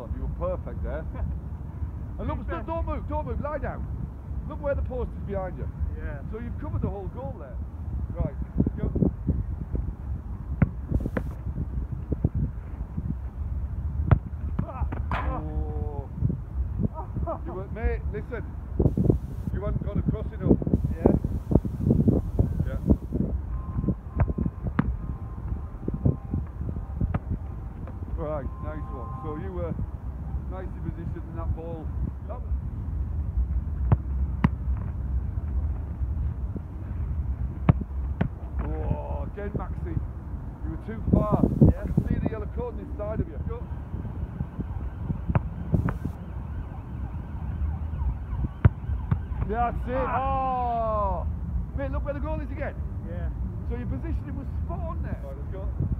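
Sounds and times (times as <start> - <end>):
wind rumbling on microphone: 0.0 - 55.9
football being kicked: 10.6 - 11.4, 14.0 - 15.4, 24.2 - 25.0, 27.0 - 28.0, 33.8 - 34.9, 37.6 - 38.7, 45.3 - 46.1, 48.6 - 49.5.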